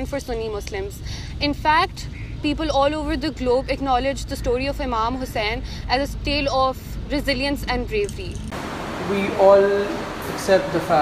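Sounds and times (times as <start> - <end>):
woman speaking: 0.0 - 8.4
road traffic rumble: 0.0 - 11.0.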